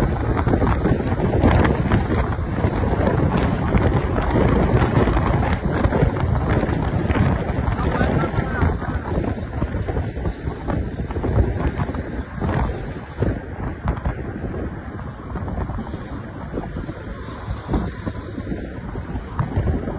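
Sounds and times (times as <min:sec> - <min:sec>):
road and traffic rumble: 0:00.0 - 0:19.9
wind buffeting microphone: 0:00.0 - 0:19.9.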